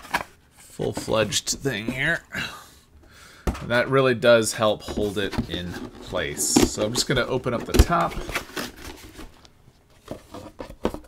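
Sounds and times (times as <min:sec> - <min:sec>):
cardboard taps and rustles: 0:04.8 - 0:11.0.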